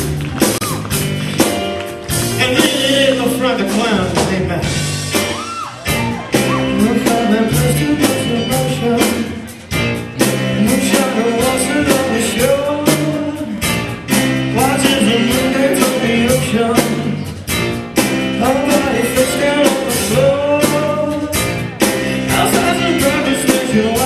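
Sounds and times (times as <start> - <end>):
live piano-rock band playing: 0.0 - 24.0.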